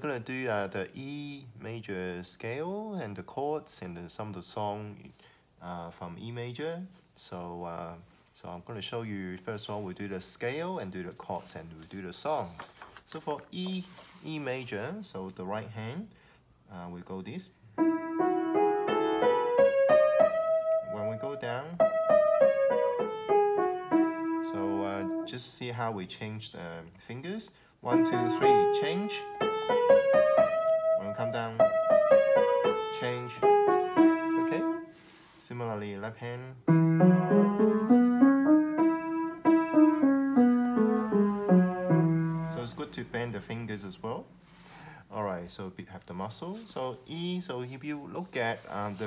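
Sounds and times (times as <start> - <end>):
piano playing a scale: 17.8 - 25.3, 27.8 - 35.0, 36.6 - 43.4.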